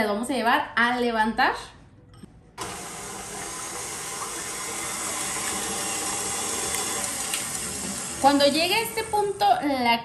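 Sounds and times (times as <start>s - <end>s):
stand mixer whisking: 2.6s - 9.8s.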